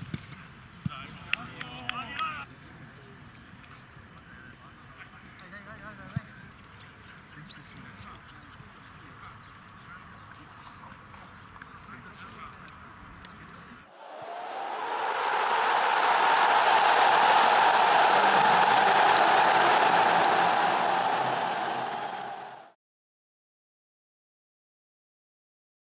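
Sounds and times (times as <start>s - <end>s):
loud steady rushing noise: 14.0s - 22.6s.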